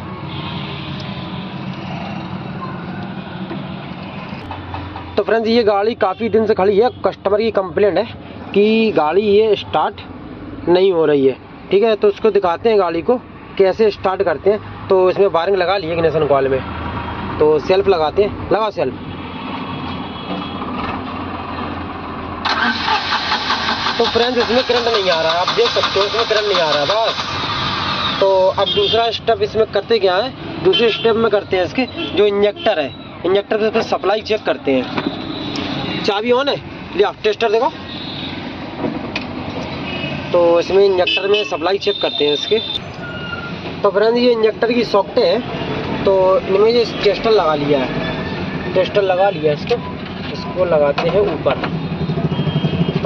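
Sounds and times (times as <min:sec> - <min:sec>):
constant background noise: 0:00.0 - 0:22.6, 0:23.6 - 0:53.0
engine cranking without starting: 0:22.4 - 0:28.2.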